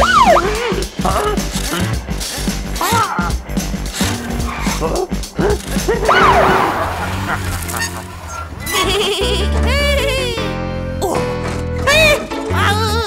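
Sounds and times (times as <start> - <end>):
cartoon background music: 0.0 - 6.8, 7.7 - 13.0
swooping pitch glide: 6.1 - 9.1.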